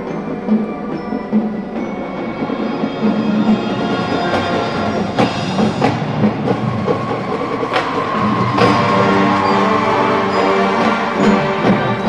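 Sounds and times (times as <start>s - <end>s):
marching band playing: 0.0s - 12.0s
percussion hits: 0.0s - 12.0s.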